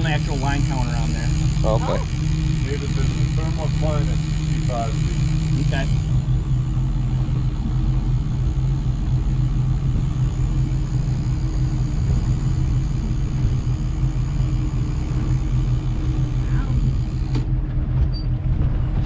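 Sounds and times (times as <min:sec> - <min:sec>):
boat engine drone: 0:00.0 - 0:19.0.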